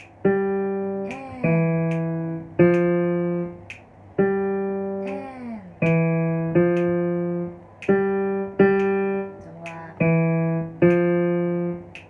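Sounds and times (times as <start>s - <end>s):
piano notes: 0.0s - 12.0s.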